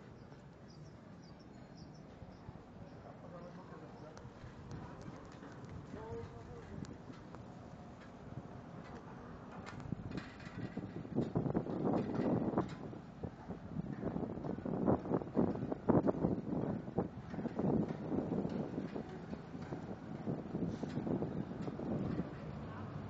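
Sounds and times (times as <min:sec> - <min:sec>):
wind buffeting microphone: 0:03.6 - 0:23.0.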